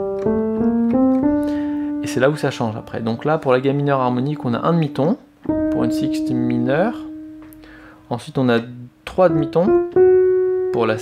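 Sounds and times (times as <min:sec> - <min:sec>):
piano notes rising in a scale: 0:00.0 - 0:11.0.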